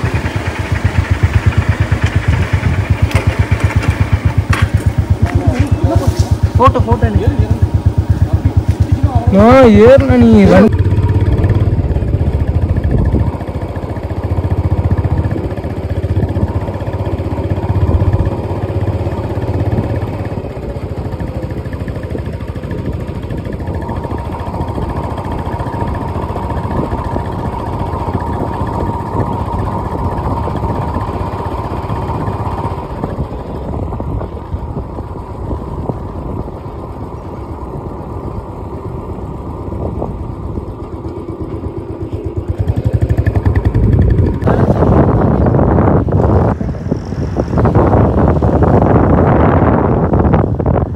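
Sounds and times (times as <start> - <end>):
vehicle engine and tyre noise: 0.0 - 50.9.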